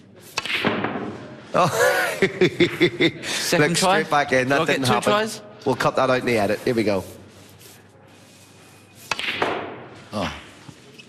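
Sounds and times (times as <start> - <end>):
billiard balls knocking: 0.3 - 1.2.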